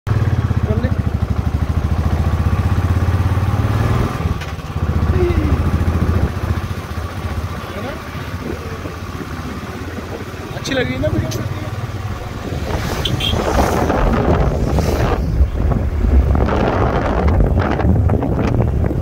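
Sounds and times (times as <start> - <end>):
motorcycle engine running: 0.1 - 19.0.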